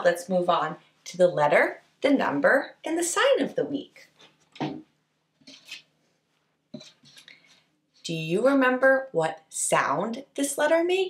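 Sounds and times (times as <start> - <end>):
faint chalkboard scrape: 5.4 - 5.9, 6.8 - 8.1.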